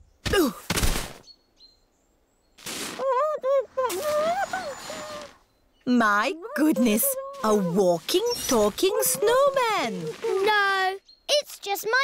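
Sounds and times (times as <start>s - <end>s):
cartoon character wordless voice: 8.9s - 12.0s.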